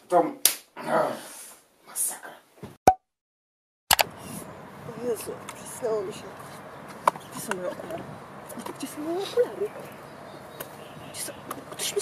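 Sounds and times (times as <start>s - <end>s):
hand slapping a face: 0.4s - 0.7s.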